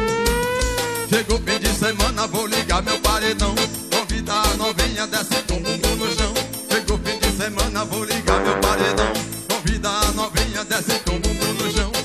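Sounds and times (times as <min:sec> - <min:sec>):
live dance music with bass beat: 0:00.0 - 0:02.3, 0:08.2 - 0:12.0.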